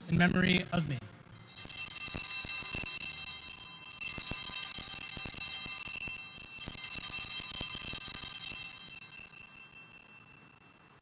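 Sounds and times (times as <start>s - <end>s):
altar bells ringing: 1.4s - 11.0s.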